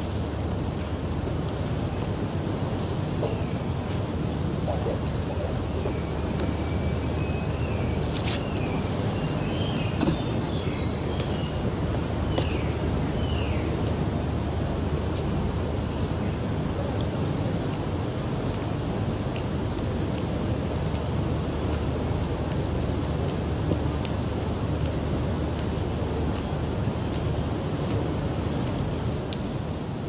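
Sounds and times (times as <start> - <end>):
faint high whistling calls: 4.3 - 11.6.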